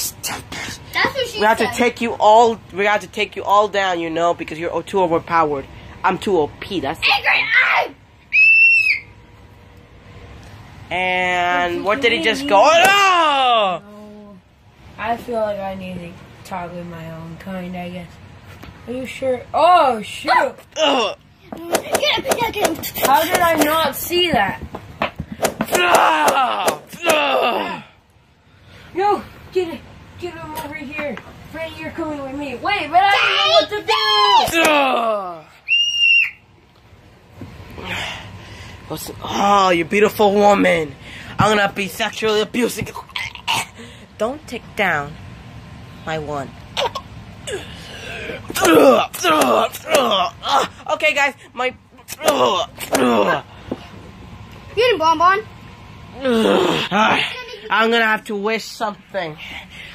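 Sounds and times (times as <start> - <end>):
high-pitched whistle-like tone: 8.3 - 9.1, 35.7 - 36.4
person screaming: 20.8 - 21.2, 25.7 - 28.0, 33.1 - 36.3, 48.2 - 50.8, 52.1 - 53.4.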